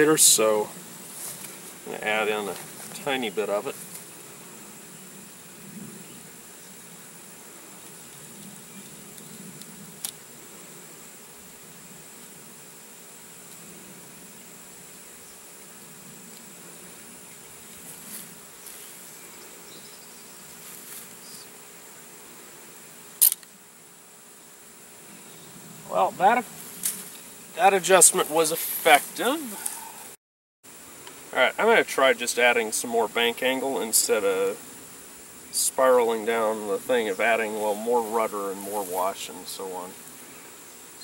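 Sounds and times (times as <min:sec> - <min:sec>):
faint outdoor hiss: 0:00.0 - 0:41.0
insects droning: 0:00.0 - 0:41.0
loud sharp click: 0:23.2 - 0:23.5.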